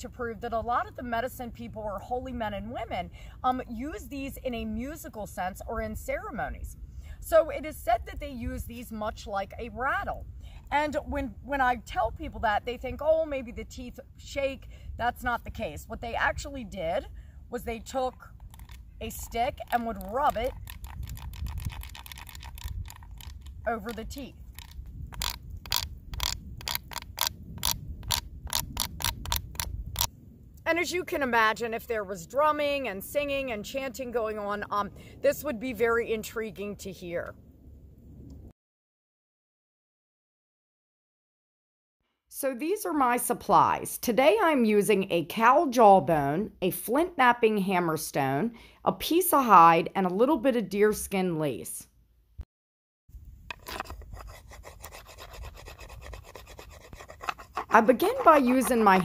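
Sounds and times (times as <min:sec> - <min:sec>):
stick rasping on jawbone teeth: 0:18.4 - 0:30.1, 0:53.5 - 0:59.0
stone scraping bone: 0:18.4 - 0:30.1, 0:53.5 - 0:59.0.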